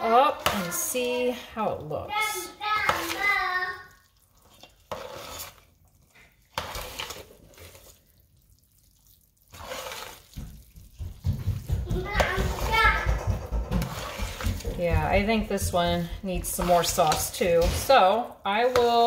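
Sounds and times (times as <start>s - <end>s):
metal spoon scraping a pot: 0.0s - 3.3s, 4.1s - 8.0s, 9.5s - 10.4s, 12.2s - 19.0s.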